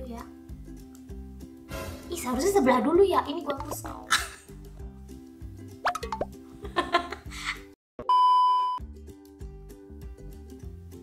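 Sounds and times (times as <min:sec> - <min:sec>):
background music with repeating pattern: 0:00.0 - 0:07.7, 0:08.8 - 0:11.0
rising blip sound effect: 0:05.8 - 0:06.3
high electronic beep: 0:08.0 - 0:08.8.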